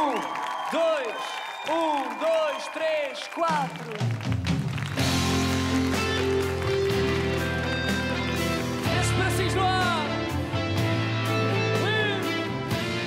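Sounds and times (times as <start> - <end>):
live pop-rock band playing: 4.2 - 13.0.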